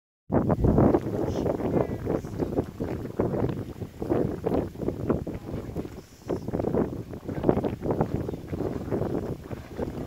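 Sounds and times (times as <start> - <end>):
wind buffeting microphone: 0.3 - 10.0.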